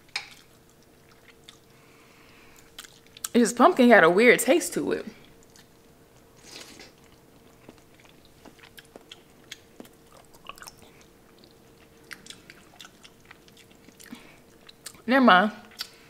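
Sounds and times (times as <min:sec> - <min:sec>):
faint steady hum: 0:00.0 - 0:16.0
person chewing food: 0:00.1 - 0:03.3, 0:05.2 - 0:16.0
soft breath: 0:01.7 - 0:02.7.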